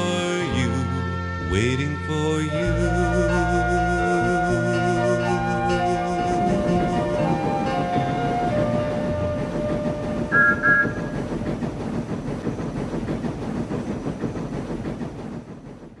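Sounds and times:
steam locomotive chuffing: 0:00.0 - 0:16.0
train whistle toots: 0:10.3 - 0:11.2.

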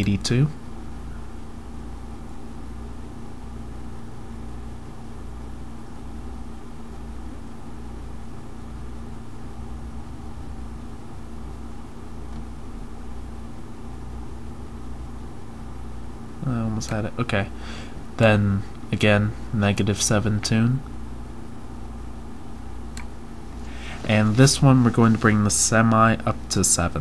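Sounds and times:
low background hum: 0:00.0 - 0:27.0.

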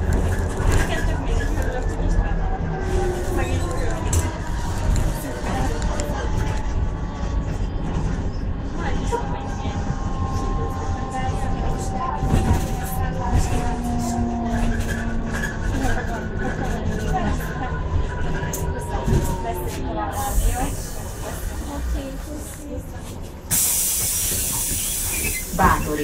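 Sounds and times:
road rumble: 0:00.0 - 0:26.0
air brake hiss: 0:23.5 - 0:25.6.

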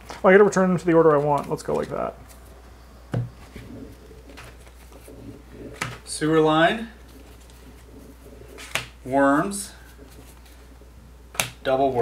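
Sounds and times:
playing card tapping: 0:08.6 - 0:09.0, 0:11.3 - 0:11.6
playing cards thumping on table: 0:08.6 - 0:09.0, 0:11.3 - 0:11.6.

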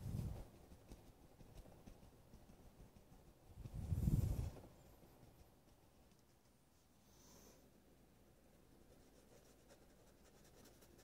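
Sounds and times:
dry brush scratching on canvas: 0:00.0 - 0:07.7, 0:08.4 - 0:11.0.

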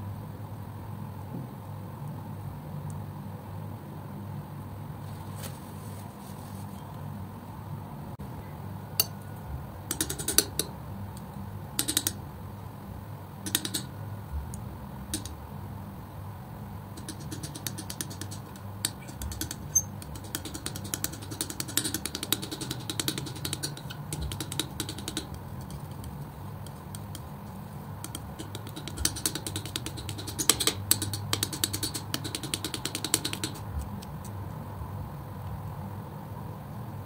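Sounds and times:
steady low hum: 0:00.0 - 0:37.0
palette knife mixing paint: 0:17.0 - 0:34.6.

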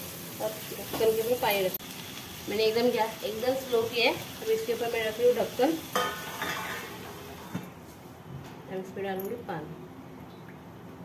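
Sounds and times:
faint sizzle from pan: 0:00.0 - 0:07.7
metal lid clanking on pan: 0:05.9 - 0:07.0.

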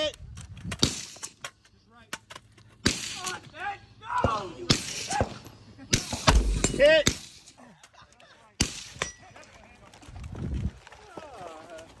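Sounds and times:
rifle shots: 0:06.0 - 0:07.3.

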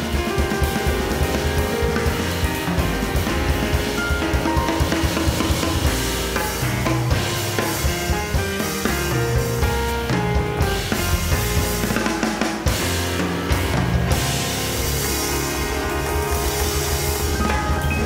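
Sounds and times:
drum kit played with sticks: 0:00.0 - 0:18.0
grand piano: 0:00.0 - 0:18.0
upright bass: 0:00.0 - 0:18.0.

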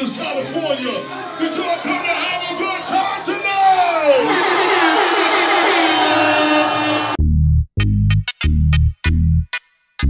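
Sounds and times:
crowd voices: 0:00.0 - 0:07.2
live concert music: 0:03.7 - 0:07.2.

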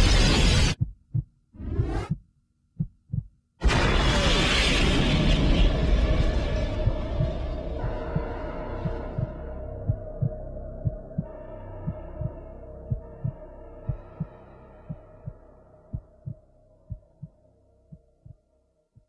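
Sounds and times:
heartbeat thumps: 0:00.7 - 0:03.4, 0:06.8 - 0:19.0
droning hum: 0:03.6 - 0:18.2.

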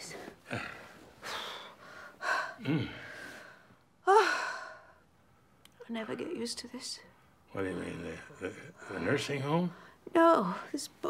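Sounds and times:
woman breathing hard: 0:00.5 - 0:05.1.

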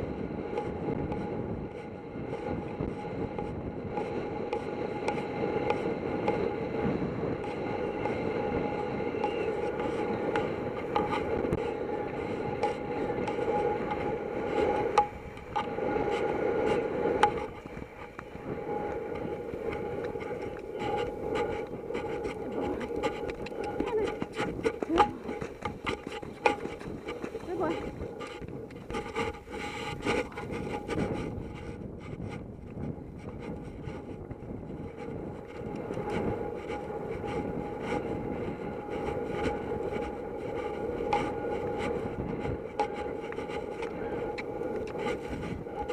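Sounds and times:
steady hum: 0:00.0 - 0:45.9
wind noise: 0:00.0 - 0:45.9
horse hoofbeats on turf: 0:21.6 - 0:28.1.

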